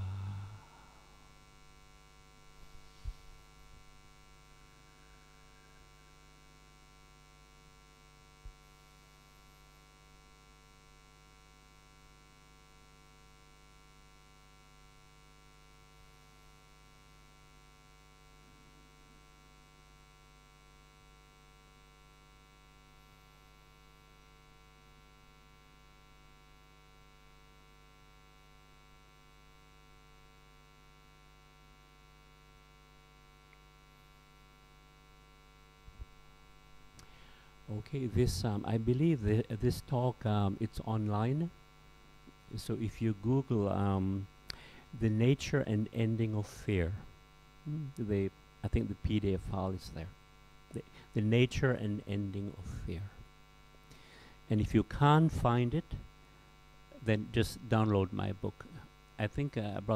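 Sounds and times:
steady electrical hum: 0.0s - 59.9s.

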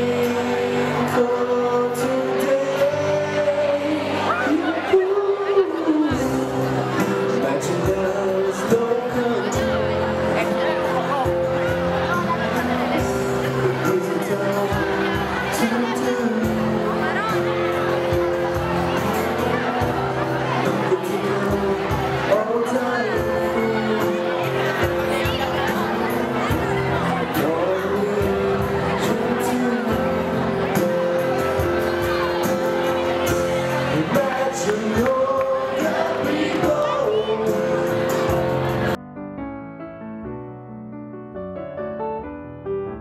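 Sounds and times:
group of voices singing: 0.0s - 10.7s, 12.0s - 39.0s
acoustic guitar: 0.0s - 39.0s.

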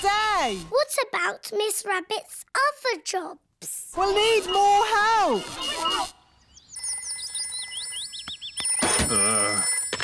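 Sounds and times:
cartoon telephone ringing: 6.7s - 10.0s.

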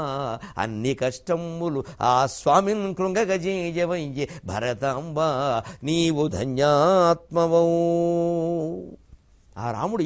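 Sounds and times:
man chanting: 0.0s - 9.0s, 9.6s - 10.0s.

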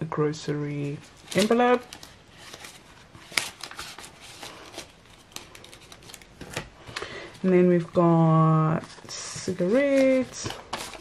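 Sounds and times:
banknotes rustling and clicking: 0.4s - 11.0s.

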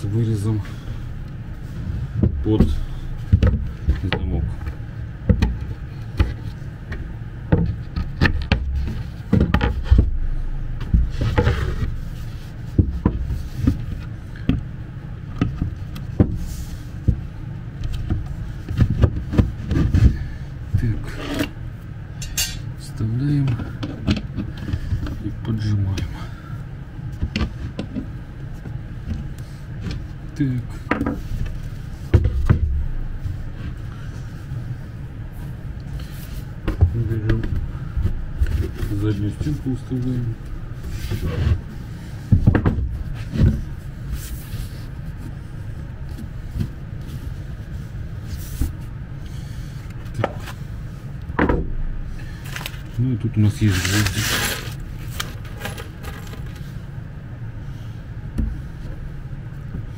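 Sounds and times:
boards knocking and scraping: 2.2s - 14.7s, 15.3s - 21.6s, 30.9s - 33.8s, 40.8s - 43.7s, 51.4s - 52.0s.

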